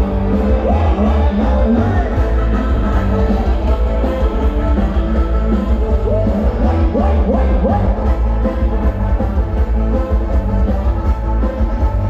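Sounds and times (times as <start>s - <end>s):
live band music with heavy bass: 0.0s - 12.0s.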